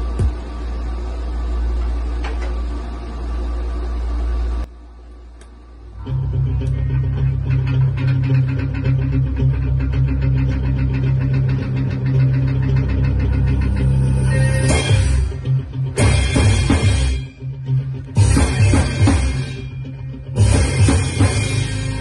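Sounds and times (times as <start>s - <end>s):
amp hum: 0.0s - 22.0s
electric guitar riff: 6.0s - 22.0s.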